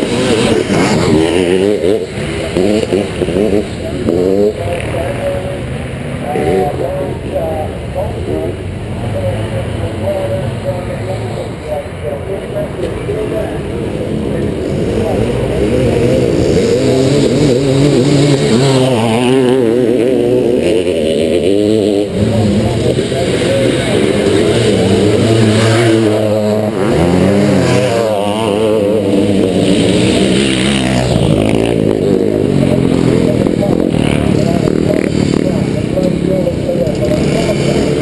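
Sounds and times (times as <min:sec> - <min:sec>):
two-stroke motorcycle engine racing: 0:00.0 - 0:38.0.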